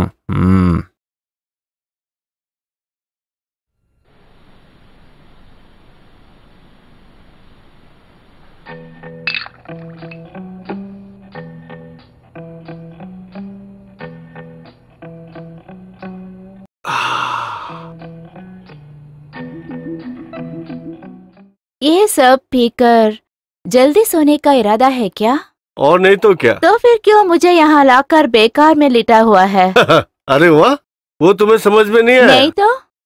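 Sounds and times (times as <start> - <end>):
man grunting: 0.0 - 0.9, 16.9 - 17.9
man sighing: 0.0 - 0.9, 16.8 - 18.0
guitar background music: 8.6 - 16.6, 17.9 - 21.5.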